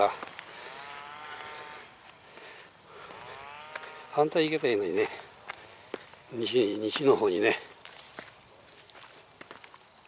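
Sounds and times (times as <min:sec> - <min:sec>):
distant cow mooing: 0:00.6 - 0:02.0, 0:02.9 - 0:04.5.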